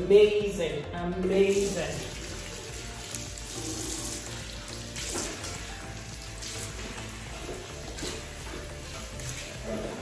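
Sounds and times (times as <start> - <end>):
soft background music: 0.0 - 10.0
tap water running into sink: 1.5 - 10.0.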